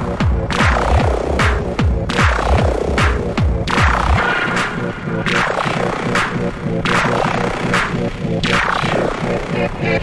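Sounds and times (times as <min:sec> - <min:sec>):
four-on-the-floor kick drum: 0:00.0 - 0:04.2
techno music: 0:00.0 - 0:10.0.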